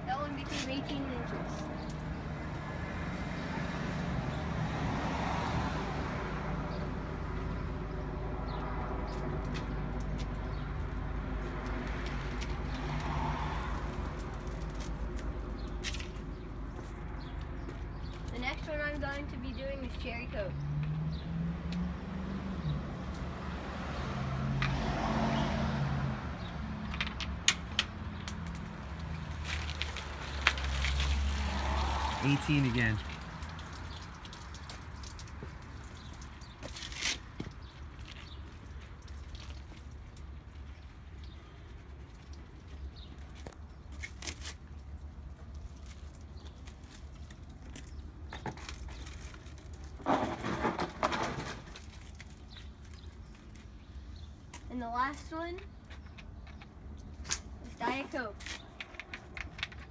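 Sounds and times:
road traffic rumble: 0.0 - 59.9.

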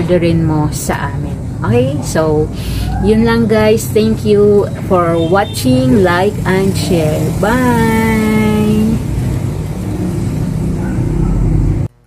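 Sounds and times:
low engine-like rumble: 0.0 - 12.0.

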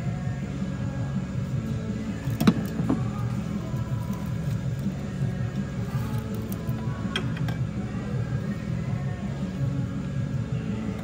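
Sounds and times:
steady low background noise: 0.0 - 11.0
hard knocks of car parts: 2.3 - 3.2.

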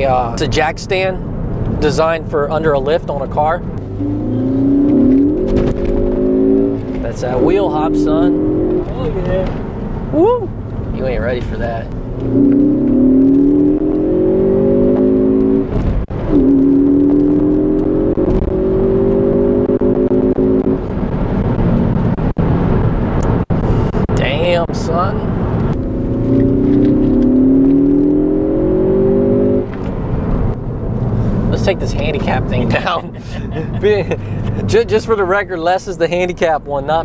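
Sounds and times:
car engine accelerating hard: 1.3 - 35.2.

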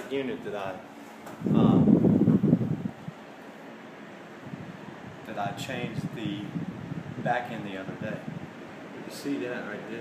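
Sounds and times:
microphone buffeting rumble: 0.0 - 10.0.

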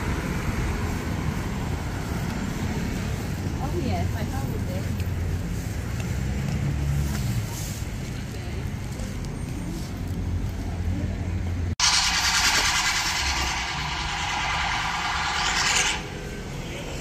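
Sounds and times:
street traffic rumble: 0.0 - 17.0
loud steady hiss: 11.8 - 16.7.

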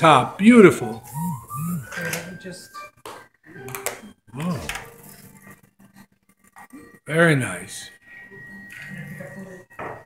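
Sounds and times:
kitchenware clinking on countertop: 9.8 - 10.0.

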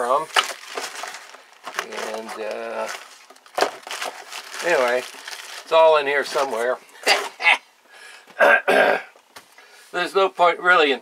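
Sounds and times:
man laughing and coughing: 8.4 - 9.2.

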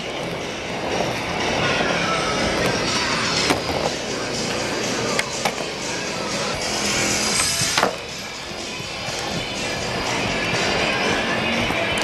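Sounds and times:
skateboard wheels rolling on wood: 0.0 - 12.0.

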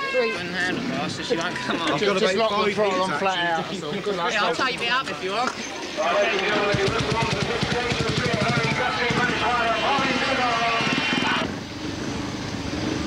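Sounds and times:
motorcycle engine revving: 6.6 - 13.0.

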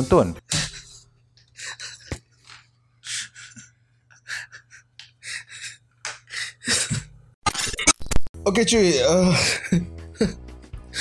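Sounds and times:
man's wheezing laughter: 3.0 - 7.1, 9.3 - 10.4.

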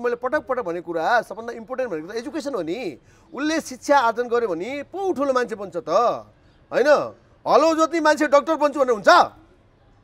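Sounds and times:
man speaking: 0.0 - 9.4.

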